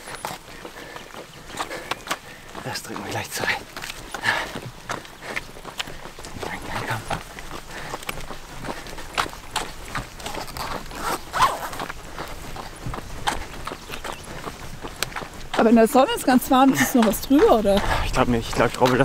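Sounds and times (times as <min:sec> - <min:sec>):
hard breathing: 0:00.0 - 0:15.5
wetsuit rubber rubbing and squeaking: 0:10.3 - 0:11.8.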